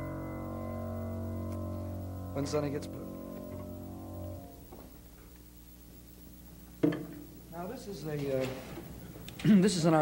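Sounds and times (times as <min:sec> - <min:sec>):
jazz piano and upright bass chord: 0:00.0 - 0:04.6.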